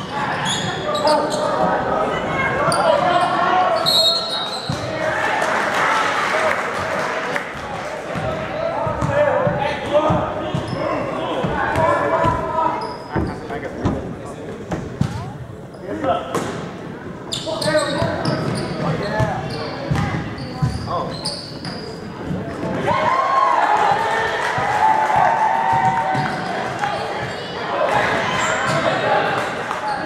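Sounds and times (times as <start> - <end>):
sneaker squeaks: 0.0 - 1.7, 2.6 - 4.9, 10.1 - 11.1, 11.7 - 14.0, 14.7 - 16.1, 17.3 - 22.7, 28.3 - 29.0, 29.8 - 30.0
voices echoing in a hall: 0.0 - 30.0.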